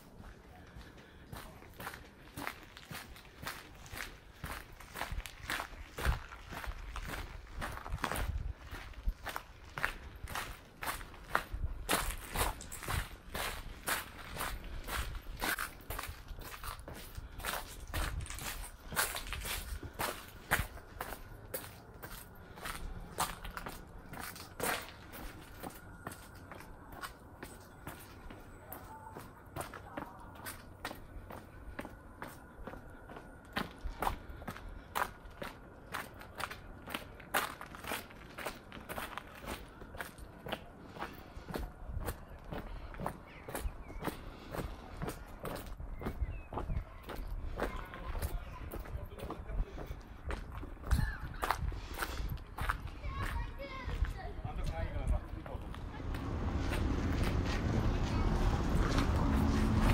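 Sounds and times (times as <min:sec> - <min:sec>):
footsteps on gravel: 0:00.0 - 0:59.9.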